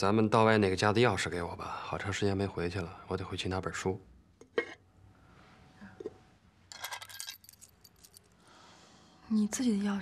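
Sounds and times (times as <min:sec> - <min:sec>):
keys jingling: 0:06.7 - 0:08.4.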